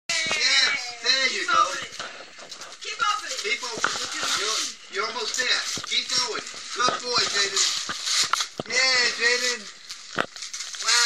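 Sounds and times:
paper rustling: 0.1 - 11.0
voices talking: 0.1 - 11.0.

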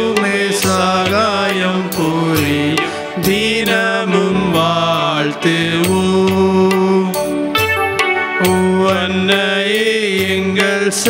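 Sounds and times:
person singing a hymn: 0.0 - 7.4, 8.3 - 11.0
instrumental accompaniment: 0.0 - 11.0.

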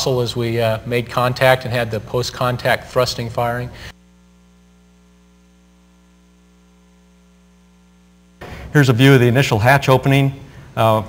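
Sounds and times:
faint electrical hum: 0.0 - 11.0.

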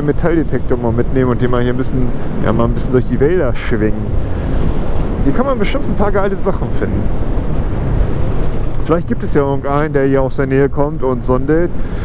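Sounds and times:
wind rushing over microphone: 0.0 - 12.0
person speaking: 5.2 - 7.2.

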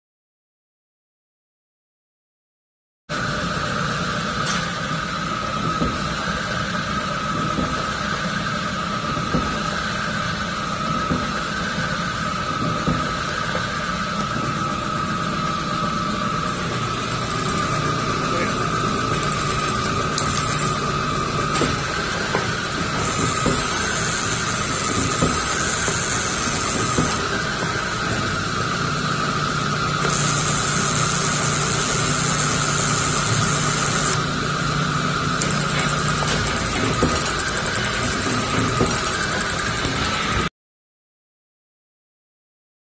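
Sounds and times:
press brake motor drone and whine: 3.1 - 40.5.

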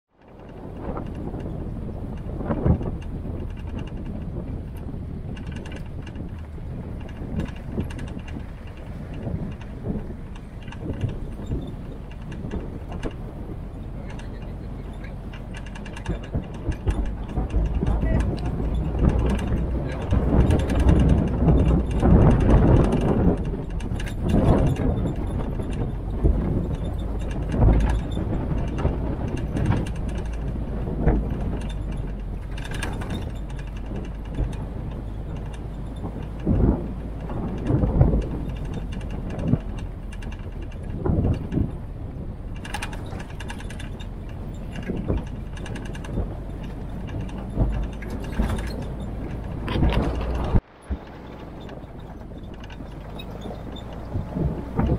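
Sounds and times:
jeep engine and road noise: 0.0 - 54.9
body rattling and knocking: 0.1 - 54.9.

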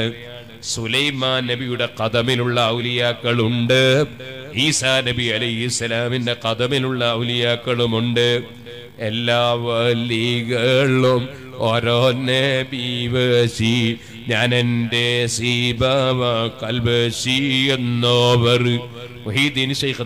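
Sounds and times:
man chanting into a microphone: 0.0 - 20.0.

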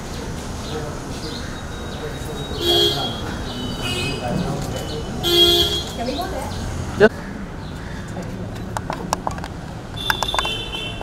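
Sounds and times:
faint background voices: 0.0 - 9.2.

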